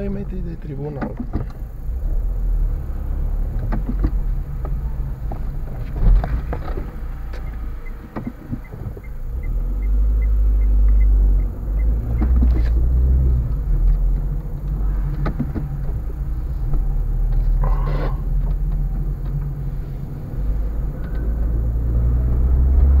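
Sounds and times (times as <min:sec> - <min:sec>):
car engine and road rumble: 0:00.0 - 0:23.0
light regular ticking: 0:07.2 - 0:17.5.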